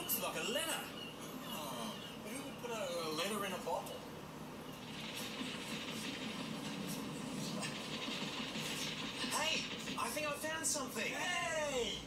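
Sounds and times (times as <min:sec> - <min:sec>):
television soundtrack: 0:00.0 - 0:12.0.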